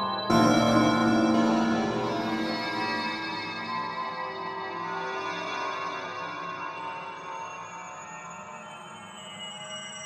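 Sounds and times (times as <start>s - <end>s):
electronic music sustained tones: 0.3s - 3.9s.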